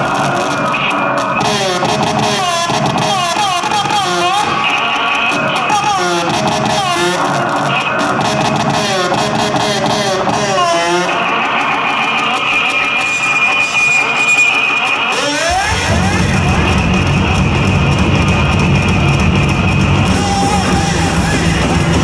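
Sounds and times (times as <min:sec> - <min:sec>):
heavy bass and drums: 0:00.0 - 0:13.2, 0:14.9 - 0:22.0
high feedback tone: 0:00.0 - 0:22.0
warbling effected bass guitar: 0:00.0 - 0:22.0.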